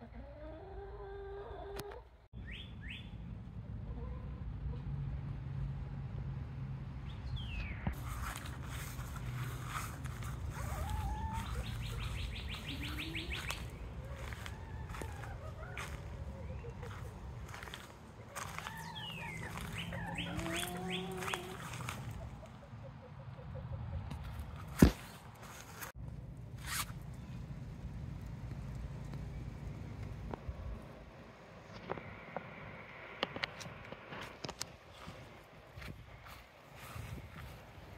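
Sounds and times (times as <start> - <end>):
steady low rumble: 7.8 - 22.8, 25.8 - 34.1
rustling swish: 8.0 - 22.4, 26.6 - 27.0
songbird trilling: 10.6 - 17.8, 18.4 - 22.0.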